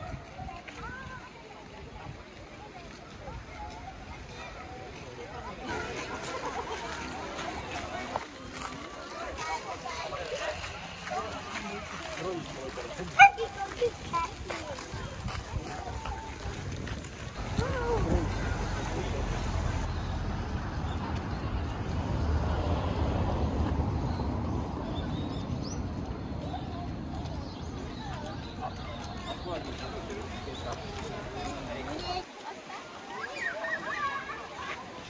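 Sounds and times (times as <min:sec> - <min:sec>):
indistinct voices talking: 0:04.0 - 0:32.2.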